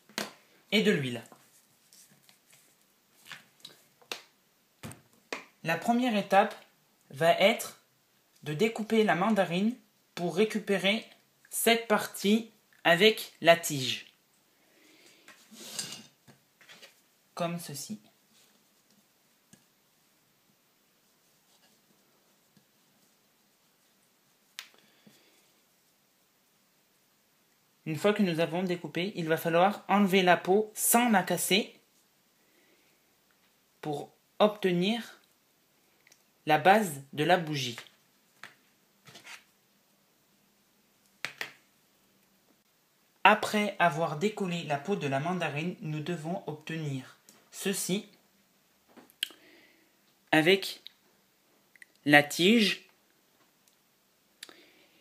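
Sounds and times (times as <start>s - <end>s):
faint rustle: 1.2s - 4.0s, 21.0s - 26.0s
plate scraping on table: 15.5s - 16.9s.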